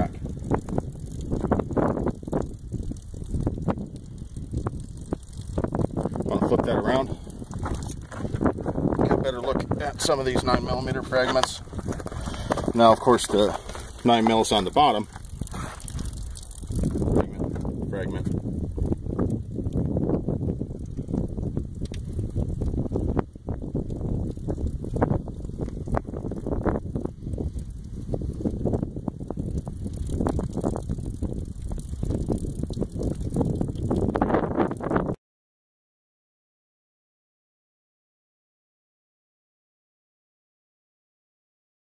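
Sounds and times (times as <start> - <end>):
wind buffeting microphone: 0.0 - 35.2.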